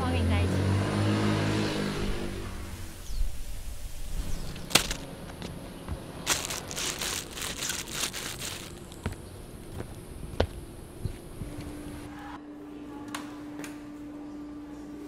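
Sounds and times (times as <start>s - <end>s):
low drone: 0.0s - 7.8s
footsteps on wooden deck: 4.8s - 11.9s
cellophane crinkling: 6.2s - 9.0s.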